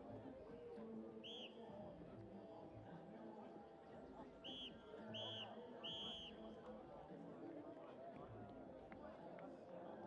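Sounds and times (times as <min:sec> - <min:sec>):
low crowd chatter: 0:00.0 - 0:10.0.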